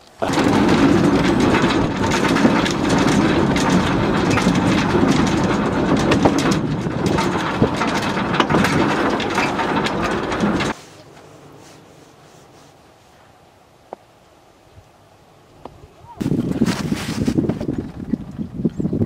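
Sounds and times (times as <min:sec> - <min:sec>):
clicks and clacks from rails: 0:00.0 - 0:10.8
rail car running noise: 0:00.1 - 0:12.7.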